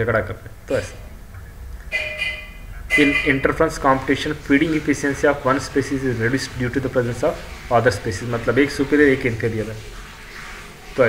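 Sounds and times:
low background hum: 0:00.0 - 0:11.0
steady multi-pitch tone: 0:01.9 - 0:04.0.

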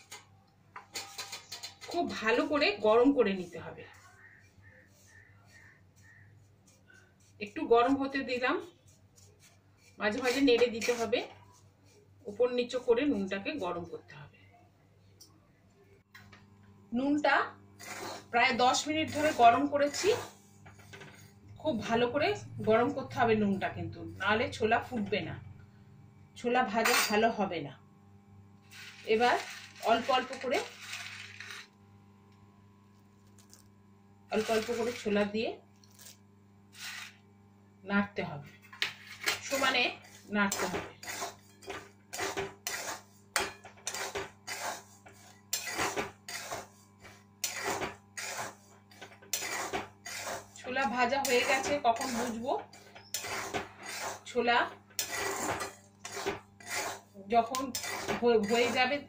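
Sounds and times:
metal spatula scraping wok: 0:00.9 - 0:07.3, 0:07.9 - 0:12.8, 0:17.8 - 0:23.3, 0:28.6 - 0:31.7, 0:34.3 - 0:35.2, 0:36.7 - 0:37.2, 0:38.8 - 0:59.0
steady low hum: 0:02.0 - 0:59.0
salt hissing in a wok: 0:28.7 - 0:29.8, 0:36.7 - 0:37.2.

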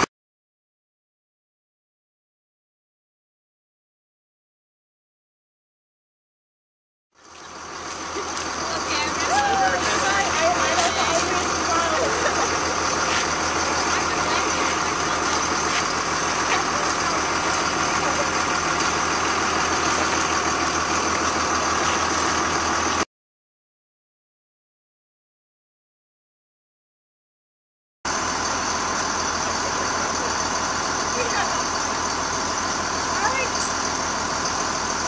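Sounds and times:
vehicle engine idling: 0:07.2 - 0:23.0, 0:28.1 - 0:35.0
indistinct voices: 0:07.6 - 0:23.0, 0:28.4 - 0:34.8.

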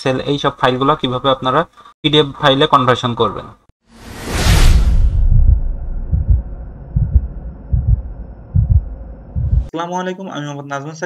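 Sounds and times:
deep bass pulses: 0:04.7 - 0:09.7.

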